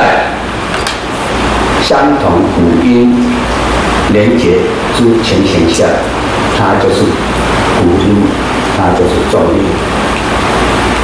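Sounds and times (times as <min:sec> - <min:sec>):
man lecturing: 0:01.8 - 0:03.4, 0:04.1 - 0:09.8.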